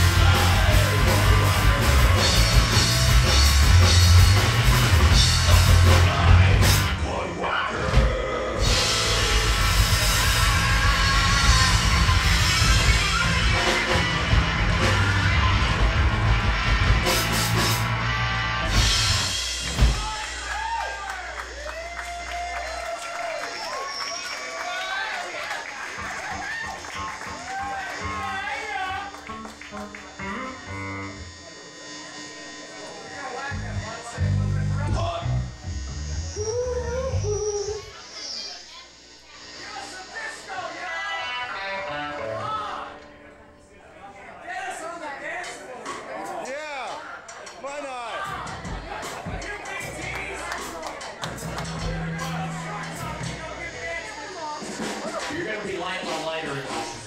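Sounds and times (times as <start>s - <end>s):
loud low bass notes: 0.0s - 7.3s, 7.9s - 20.5s, 33.5s - 37.8s, 51.2s - 54.2s
live rock band playing: 0.0s - 22.8s, 25.6s - 38.4s, 41.2s - 43.6s, 47.2s - 57.0s
distorted electric guitar: 0.0s - 22.9s, 25.8s - 43.6s, 48.3s - 57.0s.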